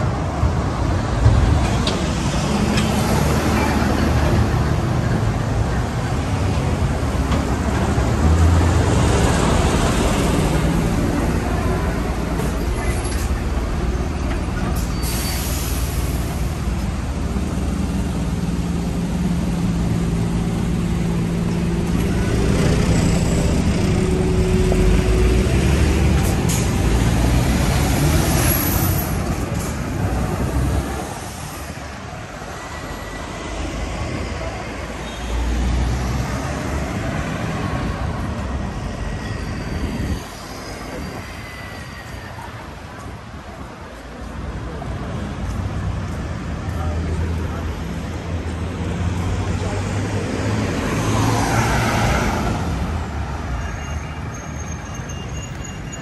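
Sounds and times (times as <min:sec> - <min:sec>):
lorry diesel engine: 0:00.0 - 0:53.5
road traffic: 0:00.0 - 0:56.0.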